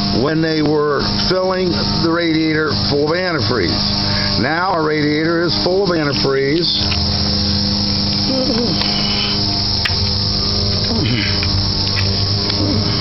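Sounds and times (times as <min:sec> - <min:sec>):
engine hiss: 0:00.0 - 0:13.0.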